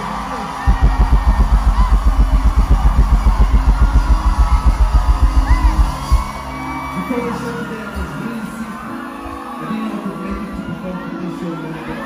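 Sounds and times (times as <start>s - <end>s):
kick drum roll: 0.7s - 6.5s.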